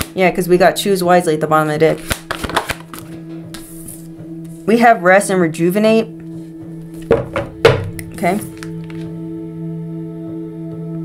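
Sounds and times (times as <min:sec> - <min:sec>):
cards knocked on tabletop: 0:02.0 - 0:02.9, 0:07.0 - 0:09.1
ambient music drone: 0:02.0 - 0:11.0.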